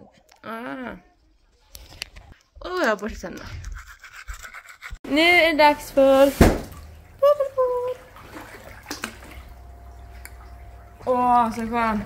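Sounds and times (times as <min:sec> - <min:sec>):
hot tub water sounds: 0:05.1 - 0:12.0.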